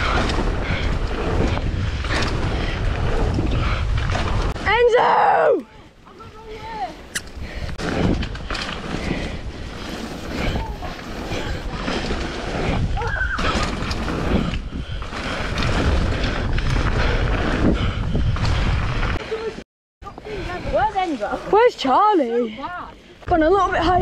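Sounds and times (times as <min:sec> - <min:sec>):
wind buffeting microphone: 0:00.0 - 0:05.0, 0:05.6 - 0:21.8, 0:22.5 - 0:24.0
tyres rumbling on wet gravel: 0:07.8 - 0:17.9.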